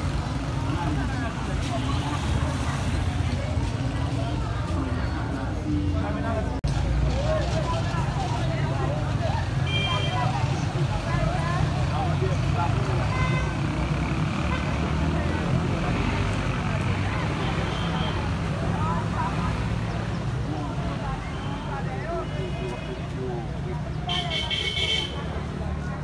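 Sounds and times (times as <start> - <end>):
traffic rumble: 0.0 - 26.0.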